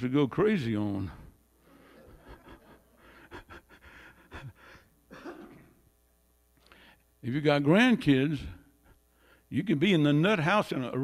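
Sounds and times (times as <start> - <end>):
faint breathing: 1.1 - 5.0, 6.6 - 7.2, 8.6 - 9.5.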